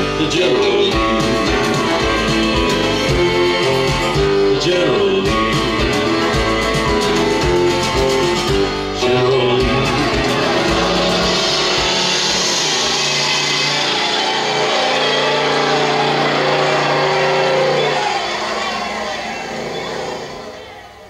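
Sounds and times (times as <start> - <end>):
car engine accelerating: 0.0 - 21.0
song music: 0.0 - 21.0.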